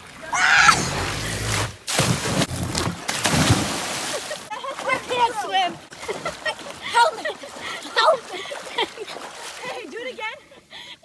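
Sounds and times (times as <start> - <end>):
water churning: 0.0 - 9.8
splash into water: 0.3 - 5.2.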